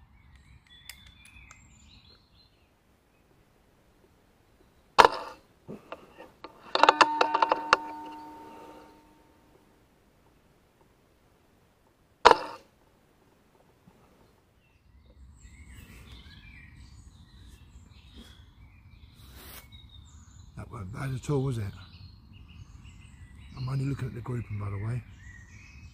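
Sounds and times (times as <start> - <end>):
metallic clicks: 6.4 - 9.2
short ringing tone: 6.6 - 9.4.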